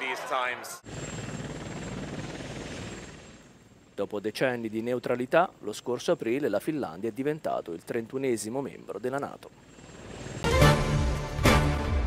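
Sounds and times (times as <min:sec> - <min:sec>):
aircraft engine and rotor noise: 0:00.8 - 0:04.0, 0:08.7 - 0:11.2.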